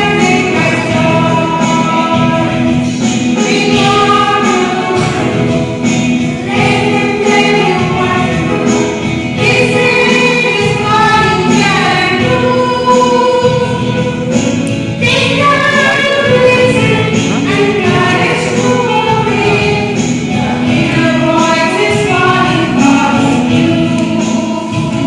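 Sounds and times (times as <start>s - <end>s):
children singing into microphones: 0.0s - 25.0s.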